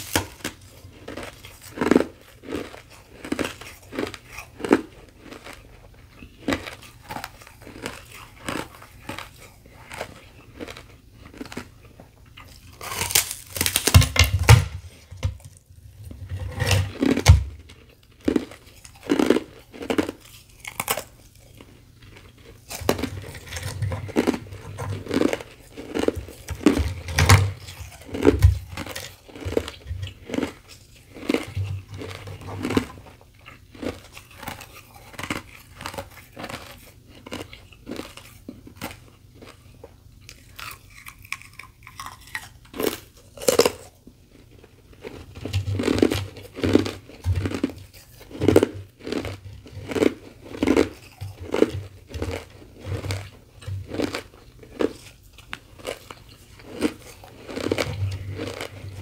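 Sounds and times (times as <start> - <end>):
chewing crunchy ice: 0.0 - 14.2, 14.8 - 59.0.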